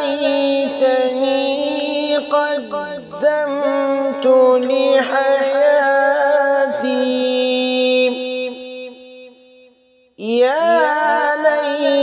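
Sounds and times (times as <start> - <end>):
person chanting a verse: 0.0 - 9.1, 10.2 - 12.0.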